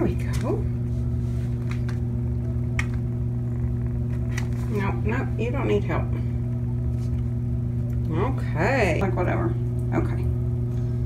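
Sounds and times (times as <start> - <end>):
woman speaking: 0.0 - 0.8, 4.6 - 6.4, 8.0 - 10.4
steady low hum: 0.0 - 11.0.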